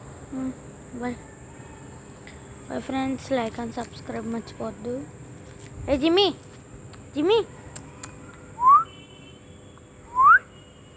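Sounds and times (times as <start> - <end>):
insects trilling: 0.0 - 10.9.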